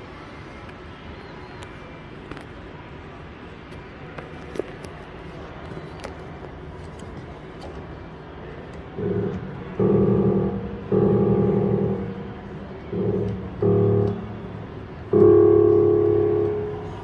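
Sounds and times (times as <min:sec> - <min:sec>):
piano notes ringing: 0:09.0 - 0:17.0.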